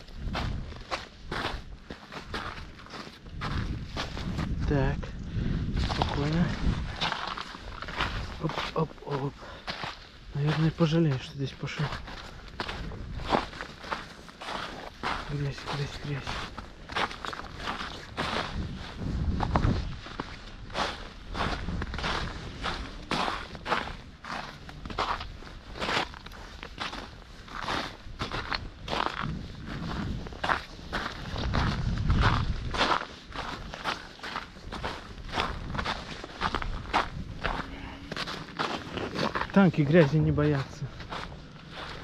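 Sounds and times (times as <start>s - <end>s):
booted footsteps on snowy mud: 0.0s - 42.0s.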